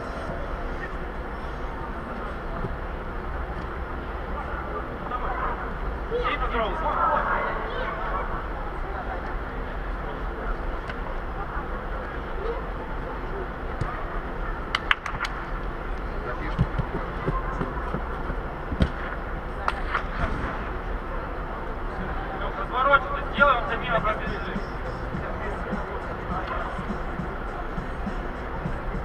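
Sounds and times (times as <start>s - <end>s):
steady background hum: 0.0s - 29.0s
ball kicks: 18.7s - 19.1s.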